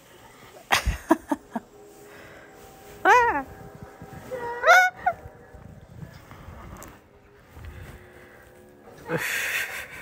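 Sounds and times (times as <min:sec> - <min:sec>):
high-pitched cry: 0:04.3 - 0:05.2.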